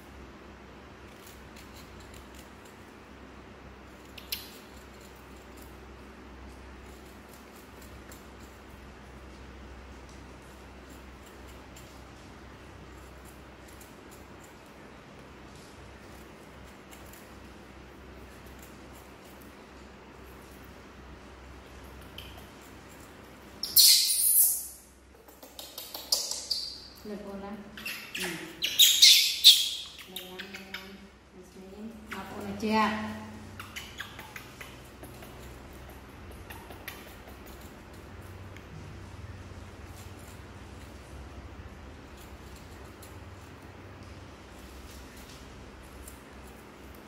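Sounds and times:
low steady hum: 0.0 - 47.0
knife cutting and scraping fruit: 0.9 - 24.6, 31.9 - 47.0
monkey squealing: 23.6 - 24.7, 27.8 - 30.1
knife peeling fruit clicks: 25.2 - 26.7.

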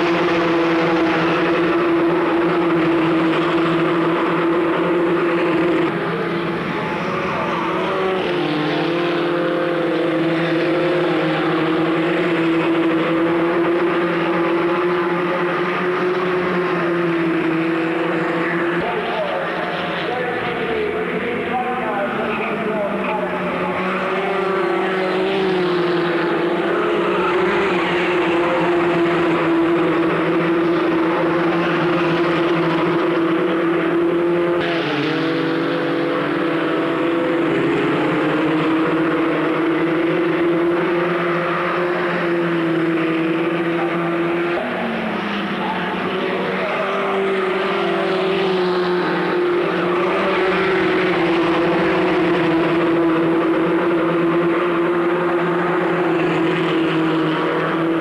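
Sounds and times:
racing car engines at high revs: 0.0 - 58.0.

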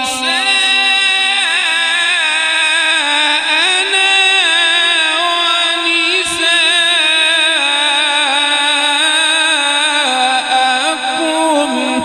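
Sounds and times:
man reciting through a microphone: 0.0 - 12.0.

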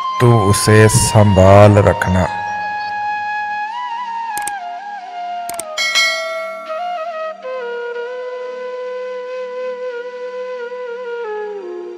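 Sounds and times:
soft flute melody: 0.0 - 11.9
sharp click: 5.5 - 6.8
bright bell chime: 5.8 - 7.0.

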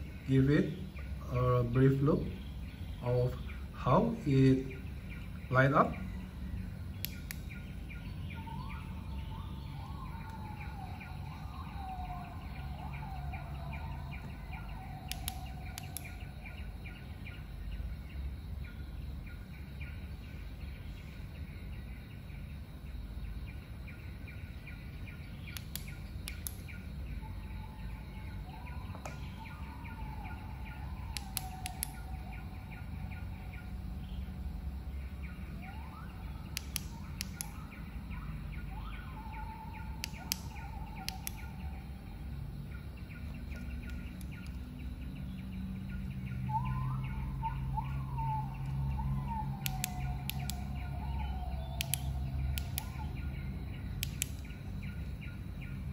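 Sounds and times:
birds chirping: 0.0 - 55.9
low hum: 0.0 - 55.9
flashlight switch clicks: 7.0 - 7.6, 15.1 - 16.2, 25.4 - 26.8, 31.1 - 32.1, 36.5 - 37.8, 40.0 - 41.6, 43.5 - 44.7, 49.6 - 50.9, 51.7 - 53.1, 53.9 - 54.7.

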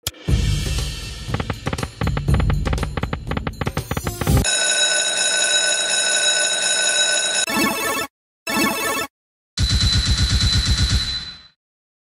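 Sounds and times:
drum beat music loop: 0.1 - 4.5.

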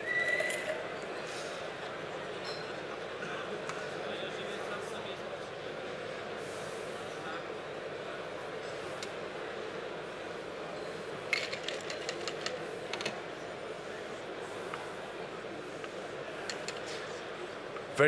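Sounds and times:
hubbub of a busy hall: 0.0 - 18.0.

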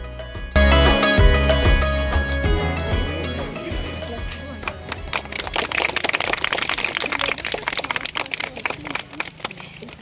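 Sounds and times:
people clapping: 4.0 - 10.0.

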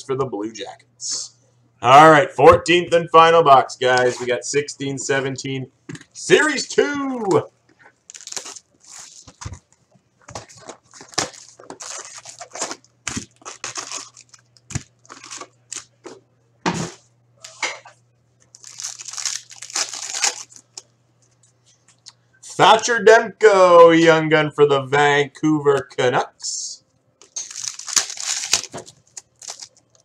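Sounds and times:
foil packs crinkling: 8.0 - 16.0, 18.4 - 20.8, 27.2 - 30.0
plastic shrink wrap tearing: 8.1 - 9.6, 10.4 - 15.9, 18.4 - 20.9, 27.2 - 30.0.

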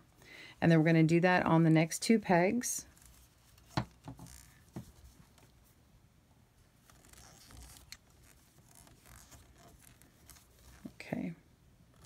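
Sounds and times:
yarn rustling on loom pegs: 2.9 - 5.7, 6.8 - 11.1.

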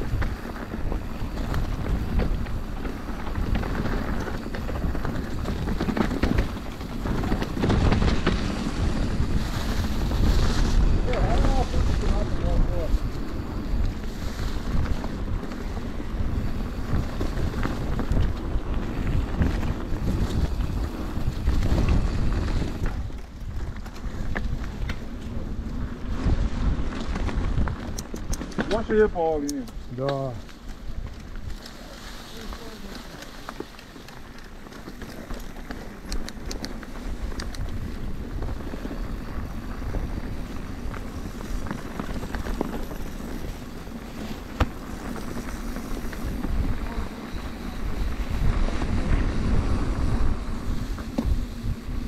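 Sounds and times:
mountain bike rumbling and rattling: 0.0 - 52.0
wind buffeting microphone: 0.0 - 52.0.

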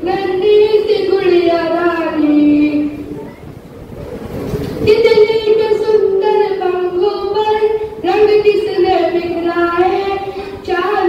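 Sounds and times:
boy singing a chant: 0.0 - 3.2, 4.9 - 11.0.

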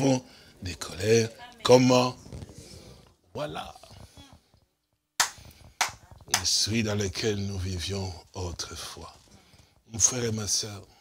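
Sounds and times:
loud sharp smacks: 5.2 - 6.5.

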